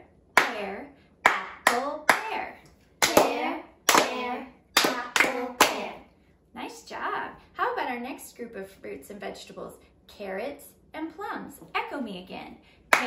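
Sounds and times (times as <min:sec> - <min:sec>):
hand claps: 0:00.4 - 0:05.9
woman chanting words: 0:00.4 - 0:06.1.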